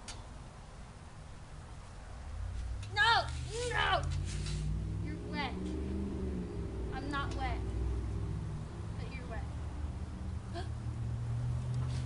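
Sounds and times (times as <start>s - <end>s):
steady low hum: 0.0s - 11.7s.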